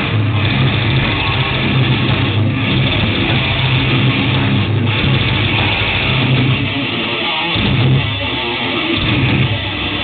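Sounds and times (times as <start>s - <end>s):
metal band playing live: 0.0s - 10.0s.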